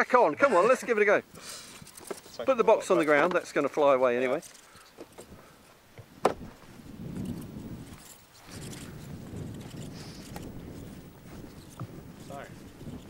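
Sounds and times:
wind buffeting microphone: 0:05.2 - 0:13.0.

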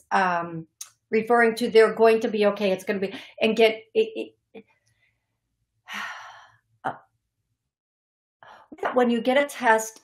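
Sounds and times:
woman sighing: 0:05.9 - 0:06.5.

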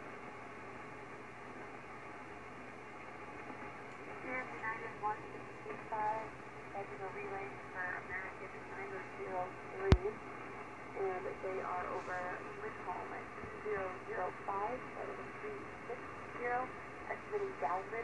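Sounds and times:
radio band hiss: 0:02.6 - 0:18.0
voices over radio: 0:04.2 - 0:10.2, 0:11.0 - 0:18.0.

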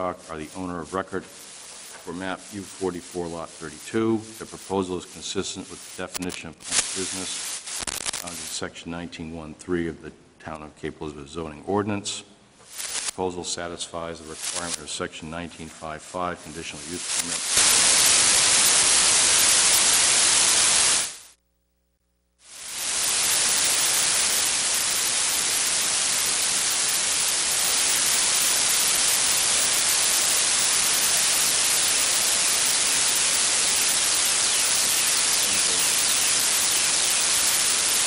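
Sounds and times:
loud static hiss: 0:00.0 - 0:08.9, 0:12.5 - 0:38.0.

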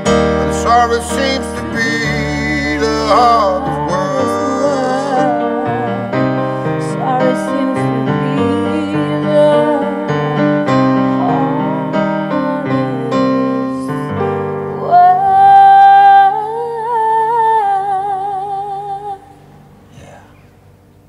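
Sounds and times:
piano playing chords: 0:00.0 - 0:19.9
woman singing long note: 0:00.6 - 0:14.2, 0:14.8 - 0:19.3.

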